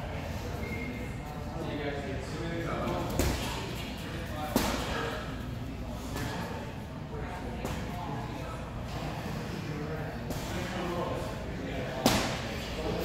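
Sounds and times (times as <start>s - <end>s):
indistinct voices in echoing hall: 0.0s - 13.0s.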